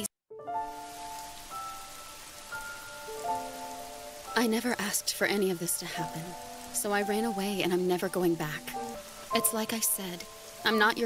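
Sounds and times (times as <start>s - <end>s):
steady rain: 0.5s - 11.0s.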